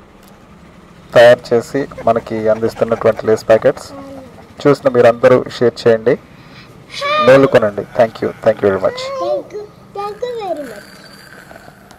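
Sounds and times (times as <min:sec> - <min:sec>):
man talking: 0:01.1 - 0:06.2, 0:07.0 - 0:09.3.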